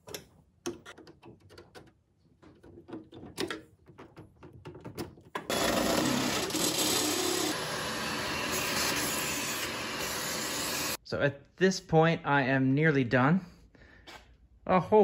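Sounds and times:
cordless drill boring metal: 0:05.5 - 0:11.0.

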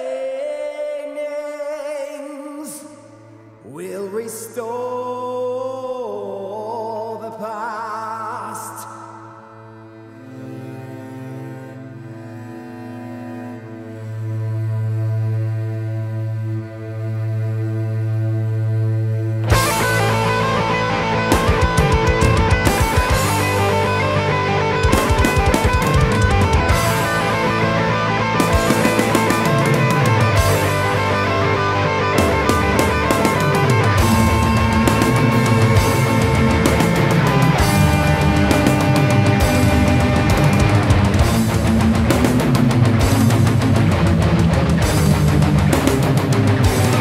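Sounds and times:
sustained droning chord: 0:09.0 - 0:47.0
distorted electric guitars: 0:18.7 - 0:47.0
drums with rapid kick-drum runs: 0:21.3 - 0:23.6, 0:24.8 - 0:27.2, 0:32.2 - 0:47.0.

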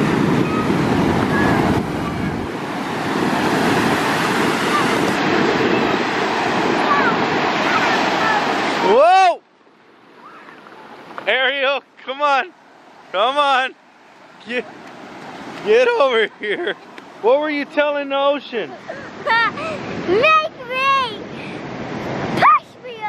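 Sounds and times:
ocean waves breaking on sand: 0:00.0 - 0:23.0.

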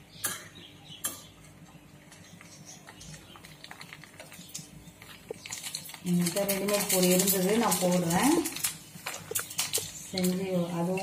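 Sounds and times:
frying oil crackling and popping: 0:02.0 - 0:11.0.

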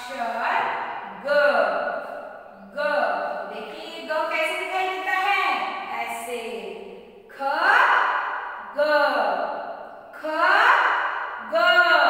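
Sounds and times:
woman chanting: 0:00.0 - 0:01.8, 0:02.5 - 0:08.0, 0:08.6 - 0:09.4, 0:10.2 - 0:12.0.

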